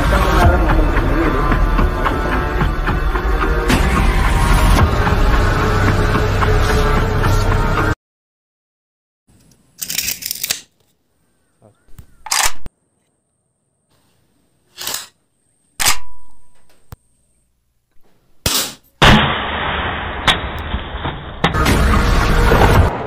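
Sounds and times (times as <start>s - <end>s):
toy rifle cracks and clacks: 9.4s - 10.8s, 12.2s - 12.7s.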